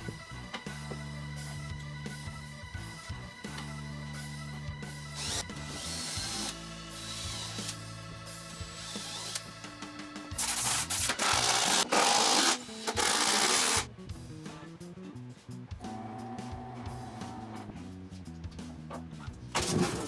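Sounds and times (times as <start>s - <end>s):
background music: 0.0s - 20.0s
loud workshop tool noise: 10.4s - 13.9s.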